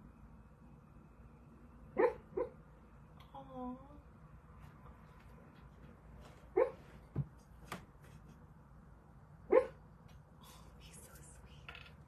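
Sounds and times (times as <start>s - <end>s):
sleeping dog barking: 2.0s - 2.6s, 6.4s - 7.0s, 9.4s - 9.8s
faint knock: 7.1s - 7.9s.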